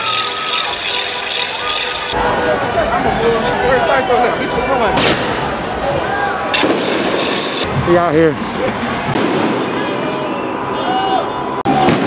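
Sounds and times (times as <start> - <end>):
crowd shouting: 0.0 - 7.6
firework bangs: 6.5 - 7.8, 9.1 - 9.7, 11.8 - 12.0.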